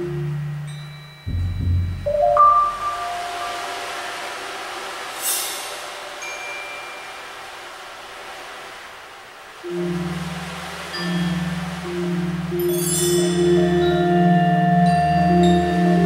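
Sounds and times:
ringing high mallet notes: 0.0s - 4.1s, 10.9s - 16.0s
low marimba notes: 0.0s - 4.3s, 9.7s - 16.0s
deep low percussion hit: 1.3s - 3.7s
bright cymbal splash: 1.3s - 7.6s.

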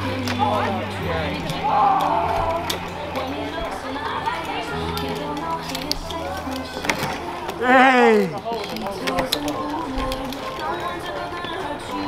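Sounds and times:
background music: 0.0s - 12.0s
unclear voices: 0.0s - 12.0s.

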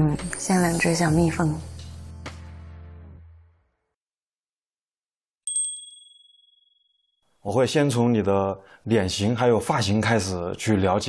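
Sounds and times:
high-pitched ding: 5.5s - 7.0s.

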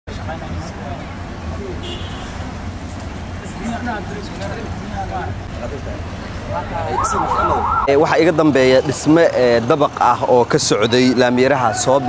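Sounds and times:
crowd and street noise: 0.1s - 12.0s
emergency vehicle siren wailing: 6.5s - 8.2s.

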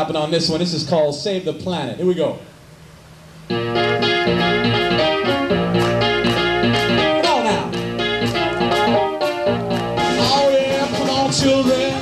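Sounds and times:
bass guitar: 3.4s - 12.0s
drums: 3.4s - 12.0s
electric guitar: 3.4s - 12.0s.

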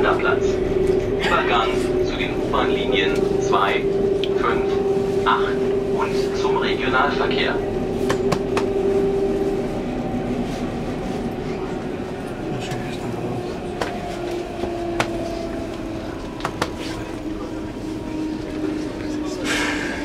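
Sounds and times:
electric train rumble with motor whine: 0.0s - 20.0s.

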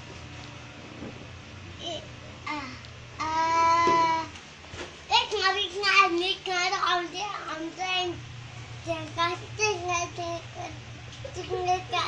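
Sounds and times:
toddler singing: 2.5s - 4.3s.

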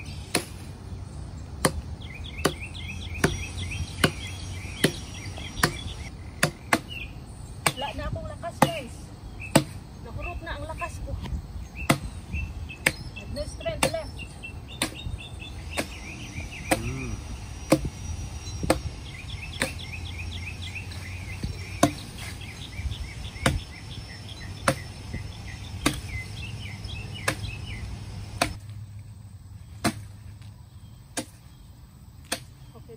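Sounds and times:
birds chirping: 0.0s - 32.9s
axe chopping wood: 0.2s - 0.7s, 1.6s - 1.8s, 2.4s - 2.6s, 3.2s - 7.0s, 7.6s - 8.0s, 8.6s - 8.9s, 9.5s - 9.8s, 11.9s - 12.1s, 13.7s - 14.1s, 16.7s - 17.0s, 18.6s - 18.9s, 19.6s - 19.8s, 21.4s - 22.2s, 23.4s - 23.7s, 24.6s - 24.9s, 25.8s - 26.2s, 27.2s - 27.6s, 28.4s - 28.6s, 29.8s - 30.1s, 31.2s - 31.4s, 32.2s - 32.5s
low background drone: 14.6s - 28.6s.

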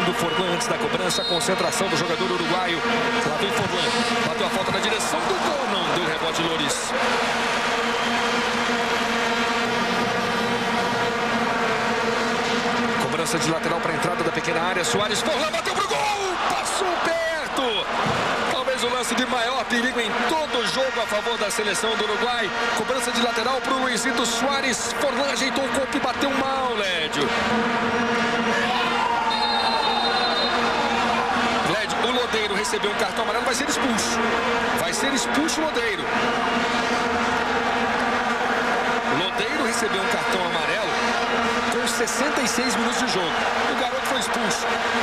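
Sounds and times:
crowd noise: 0.0s - 45.0s
referee's whistle: 1.1s - 1.9s, 29.1s - 30.8s
vuvuzelas droning: 1.2s - 13.1s, 20.1s - 31.7s.

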